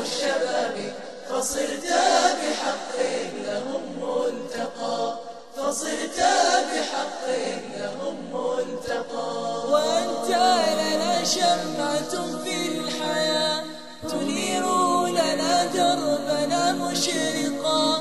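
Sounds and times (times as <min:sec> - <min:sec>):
chorus singing: 0:00.0 - 0:18.0.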